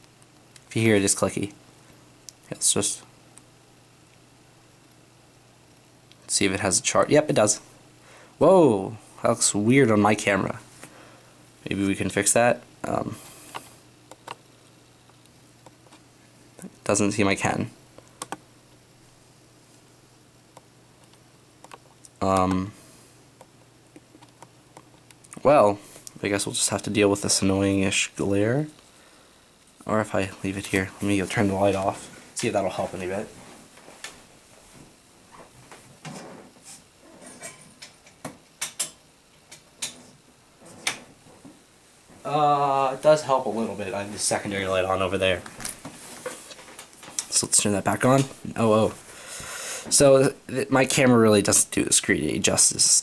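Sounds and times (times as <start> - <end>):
high hiss: 42.2 - 53.0.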